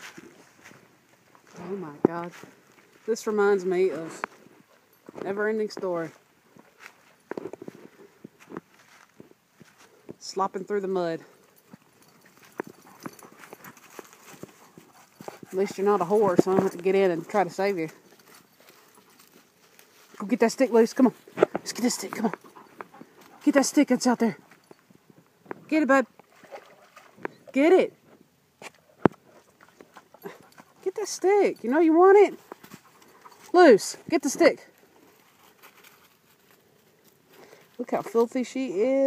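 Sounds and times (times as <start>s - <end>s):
footsteps squelching through mud: 11.2s - 27.5s.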